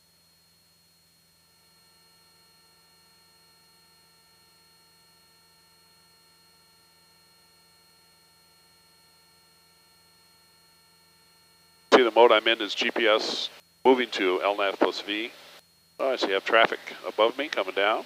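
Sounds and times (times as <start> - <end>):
faint electrical hum: 11.5 - 18.0.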